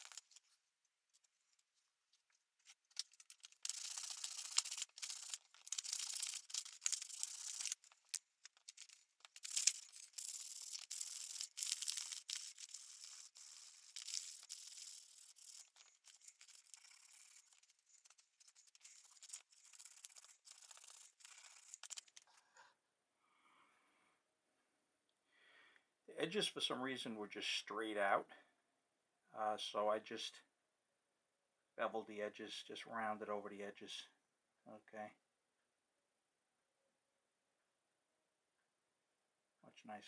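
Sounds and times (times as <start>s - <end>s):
sandpaper scraping wood: 3.3s - 7.9s, 8.7s - 22.0s.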